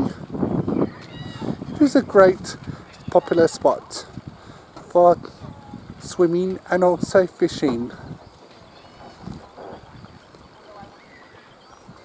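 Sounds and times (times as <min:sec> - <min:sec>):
distant bird chirps: 0:07.9 - 0:12.0.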